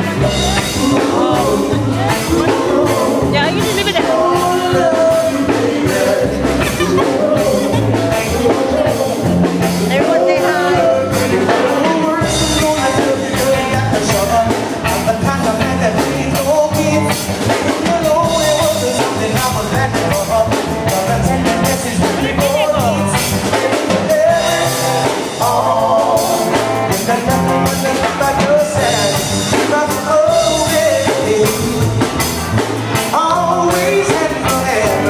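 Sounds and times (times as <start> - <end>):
drum kit beat: 0.0 - 35.0
electric bass: 0.0 - 35.0
electric guitar: 0.0 - 35.0
person singing: 0.0 - 35.0.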